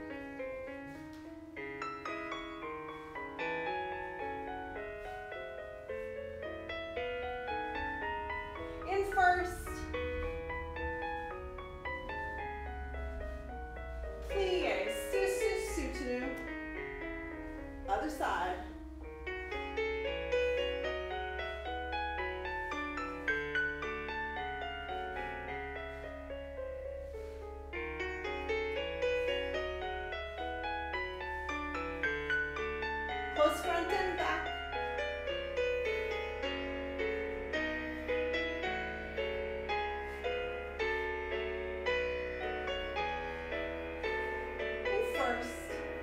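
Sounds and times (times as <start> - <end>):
solo piano music: 0.0 - 46.0
person speaking: 8.9 - 9.9, 14.2 - 16.4, 33.4 - 34.5, 44.9 - 45.9.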